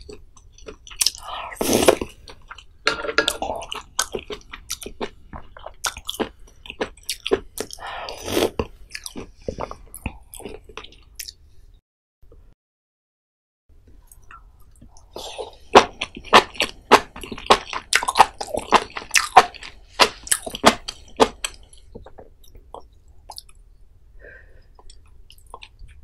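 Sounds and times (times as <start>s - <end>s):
wet chewing with small clicks: 15.8s - 23.6s, 24.8s - 26.0s.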